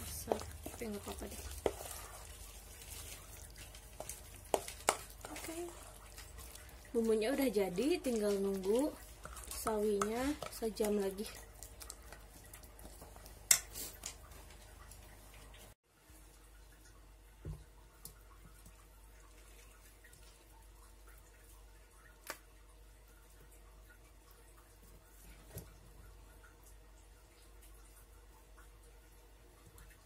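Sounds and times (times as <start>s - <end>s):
wet handling of cabbage leaves: 0.0s - 15.7s.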